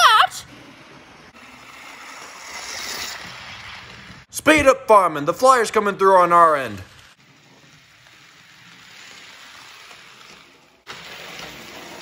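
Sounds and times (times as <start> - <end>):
model train rushing past: 0.4 - 4.3, 6.6 - 12.0.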